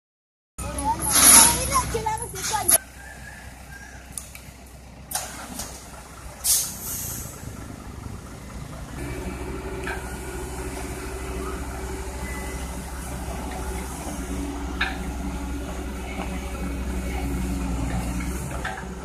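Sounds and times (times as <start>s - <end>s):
diesel engines idling: 0.6s - 19.0s
excavator diesel engine running: 0.6s - 19.0s
air brake hisses: 6.4s - 7.4s.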